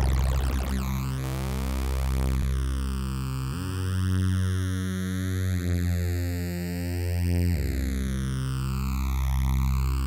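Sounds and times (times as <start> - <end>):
synthesizer lead notes with phaser: 0.0 - 10.0.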